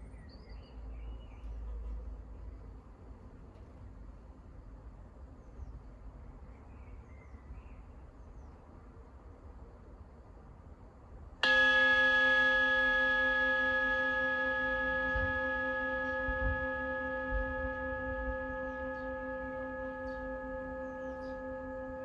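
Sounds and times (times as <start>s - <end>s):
metal bell strike ringing: 11.4s - 22.0s.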